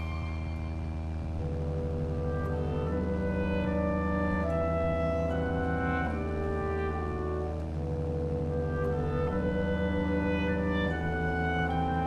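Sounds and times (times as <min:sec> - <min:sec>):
slow background music: 0:00.0 - 0:12.0
steady low hum: 0:00.0 - 0:12.0.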